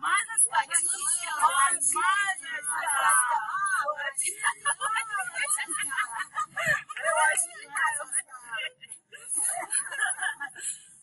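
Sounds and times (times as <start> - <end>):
high-pitched voices calling out: 0.0 - 10.0.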